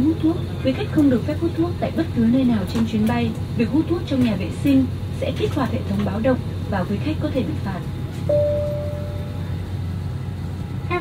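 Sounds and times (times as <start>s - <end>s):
cabin ventilation low hum: 0.0s - 11.0s
cabin chime tone: 8.3s - 9.4s.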